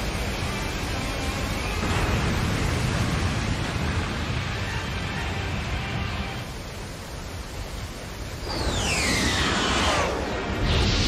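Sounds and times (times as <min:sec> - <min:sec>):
wind: 0:00.0 - 0:11.0.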